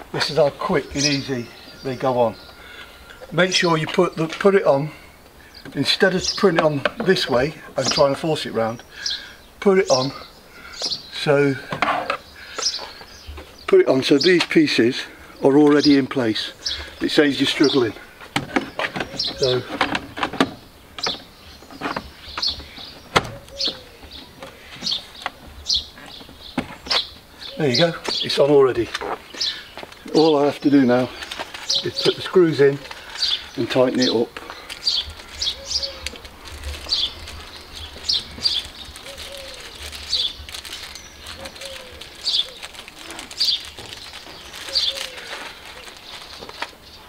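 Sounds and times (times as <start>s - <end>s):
birds chirping: 0.0s - 47.0s
lower bird calls: 0.0s - 47.0s.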